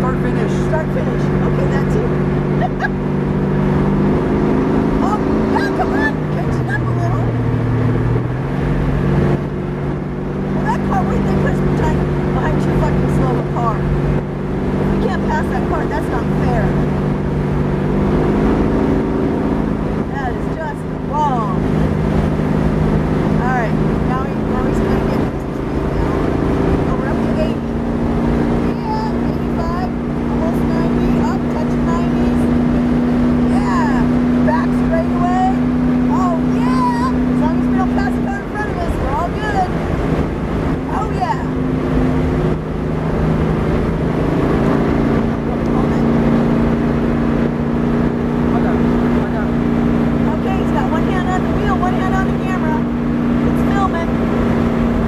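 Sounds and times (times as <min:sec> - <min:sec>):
car engine running at speed: 0:00.0 - 0:55.0.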